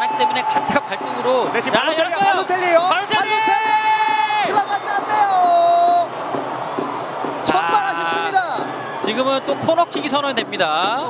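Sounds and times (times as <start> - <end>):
stadium ambience: 0.0 - 11.0.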